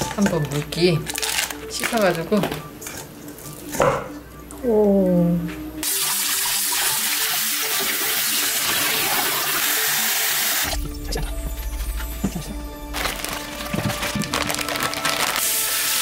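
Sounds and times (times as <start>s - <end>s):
tap water running into metal bowl: 5.8s - 10.6s.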